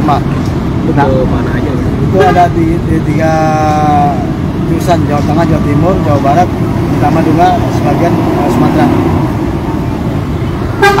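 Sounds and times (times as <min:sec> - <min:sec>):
low engine rumble: 0:00.0 - 0:11.0
vehicle horn honking: 0:10.7 - 0:11.0.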